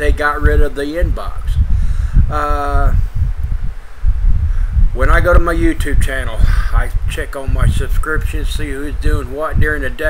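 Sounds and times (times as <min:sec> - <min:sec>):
low uneven rumble: 0:00.0 - 0:10.0.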